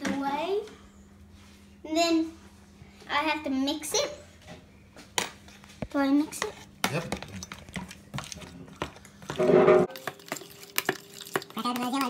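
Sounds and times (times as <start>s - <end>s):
fork beating eggs in plastic container: 6.3s - 12.0s.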